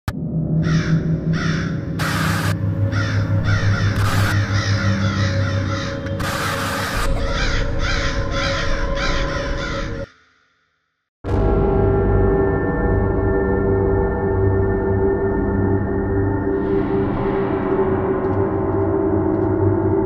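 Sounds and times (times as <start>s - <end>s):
low ominous drone: 0.1s - 10.1s, 11.3s - 20.0s
crows cawing: 0.6s - 10.5s.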